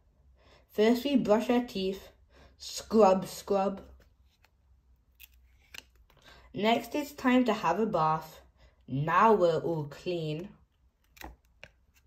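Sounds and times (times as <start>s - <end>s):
cardboard page turning: 5.2s - 6.1s, 11.0s - 12.0s.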